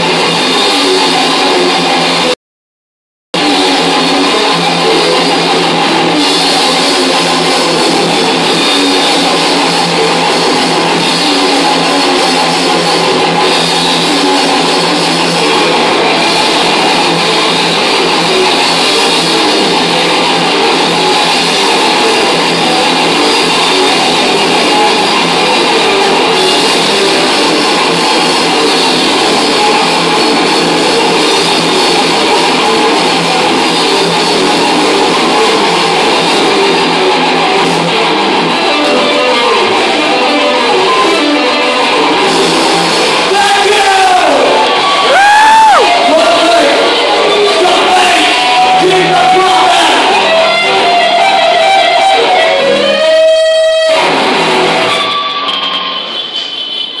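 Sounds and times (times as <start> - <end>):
distorted electric guitars: 0.0 - 2.4, 3.4 - 57.0
drum kit: 0.0 - 2.4, 3.4 - 57.0
ringing feedback tones: 3.4 - 57.0.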